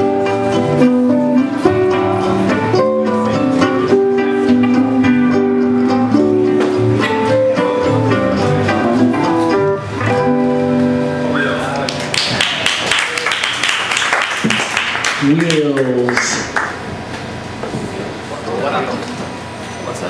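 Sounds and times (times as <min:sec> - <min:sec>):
twangy string band instrumental: 0:00.0 - 0:11.3
applause: 0:11.8 - 0:16.8.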